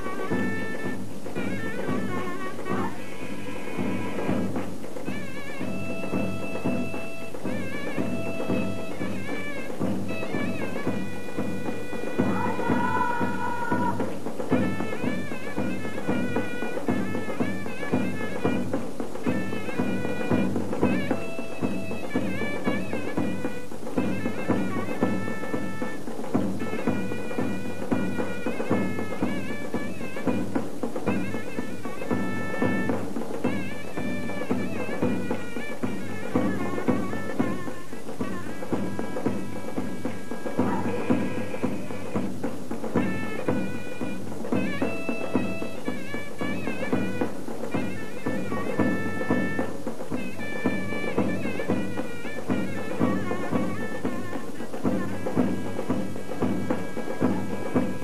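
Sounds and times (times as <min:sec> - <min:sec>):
folk dance tune: 0:00.0 - 0:58.0.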